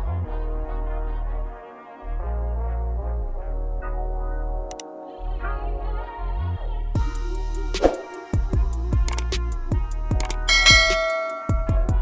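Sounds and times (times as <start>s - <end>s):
electronic music with steady beat: 7.0s - 12.0s
bright bell chime: 10.5s - 12.0s.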